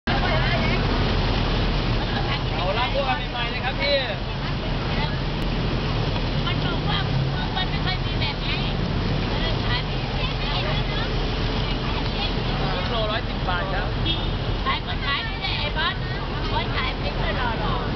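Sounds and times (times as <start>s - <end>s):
traffic: 0.0s - 17.9s
voices: 0.0s - 17.9s.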